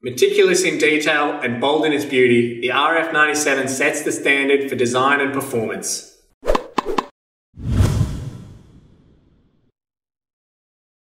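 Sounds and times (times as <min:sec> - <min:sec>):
whoosh with deep boom: 0:07.6 - 0:09.5.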